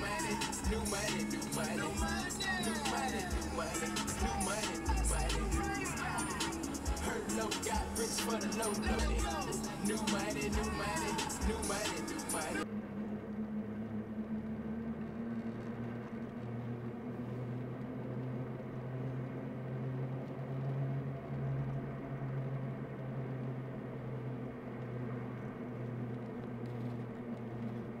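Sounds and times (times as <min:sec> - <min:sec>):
car engine drone: 0:00.0 - 0:28.0.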